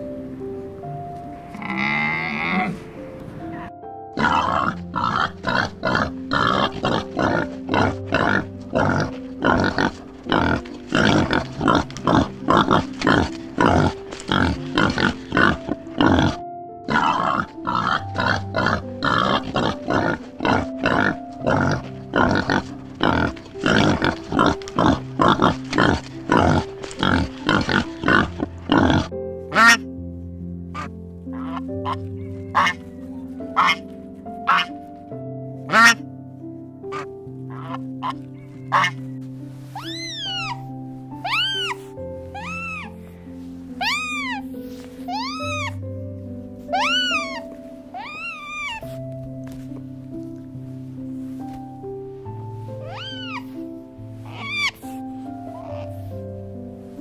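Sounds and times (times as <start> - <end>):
background music with held notes: 0.0 - 57.0
camel calling: 1.5 - 2.9, 4.2 - 29.8, 30.8 - 34.8, 35.7 - 36.0, 36.9 - 43.0, 43.8 - 45.8, 46.7 - 49.1, 52.8 - 53.6, 54.2 - 56.1
warthogs grunting: 1.5 - 3.0, 4.2 - 29.8, 33.4 - 33.9
geese honking: 4.2 - 29.8, 30.8 - 34.8, 35.7 - 36.0, 36.9 - 39.1, 52.8 - 53.6, 54.2 - 56.0.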